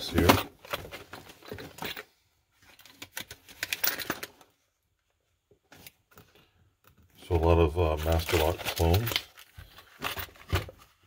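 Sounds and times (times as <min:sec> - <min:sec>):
plastic packaging clicking and crackling: 0:07.9 - 0:10.8.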